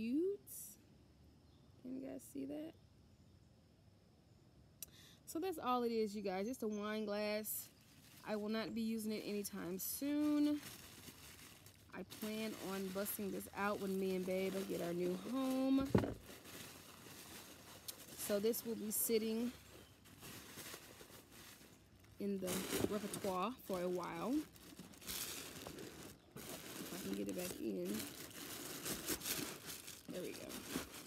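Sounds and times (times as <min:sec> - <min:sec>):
faint background noise: 0:00.0 - 0:31.0
tissue paper crinkling: 0:07.6 - 0:31.0.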